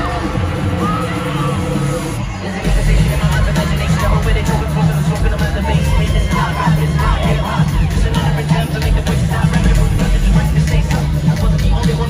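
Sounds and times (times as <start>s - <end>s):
crowd shouting and cheering: 0.0s - 12.0s
live band music with heavy bass: 0.0s - 12.0s.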